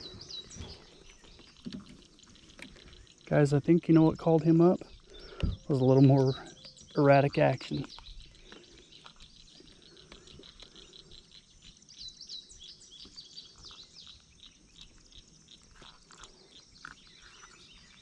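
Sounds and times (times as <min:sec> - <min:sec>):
faint birdsong chirps: 0:00.0 - 0:18.0.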